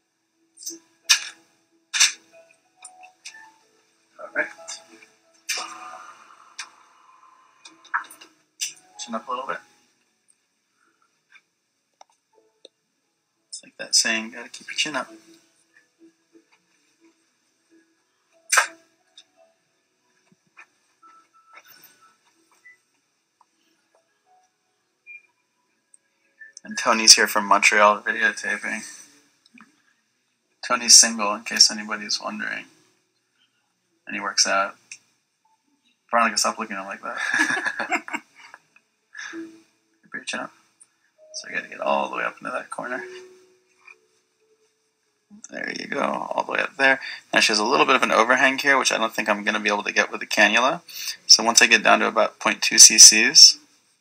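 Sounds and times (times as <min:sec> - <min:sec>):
faint two-tone hum: 0:00.0 - 0:54.0
person's voice: 0:26.6 - 0:29.1, 0:41.3 - 0:43.3, 0:45.4 - 0:53.6.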